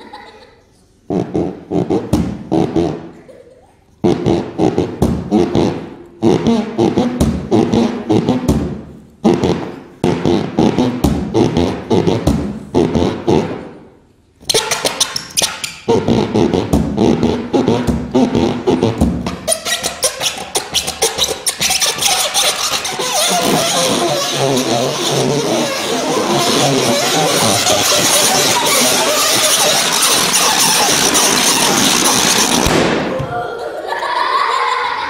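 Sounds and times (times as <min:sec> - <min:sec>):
air buzzing out of balloon neck: 0:01.1 - 0:03.2, 0:04.0 - 0:13.8, 0:14.4 - 0:32.9.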